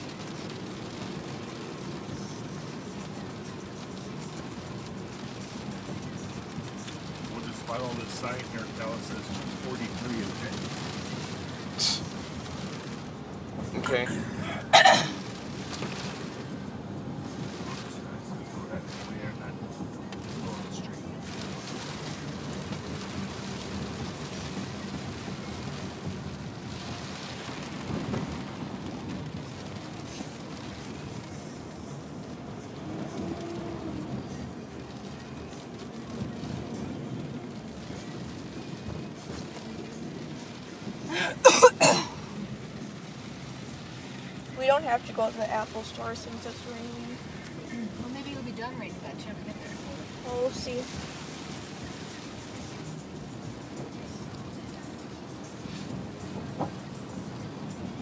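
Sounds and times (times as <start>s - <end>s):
rain on a car: 0.0s - 58.0s
tyres on a wet road: 0.0s - 58.0s.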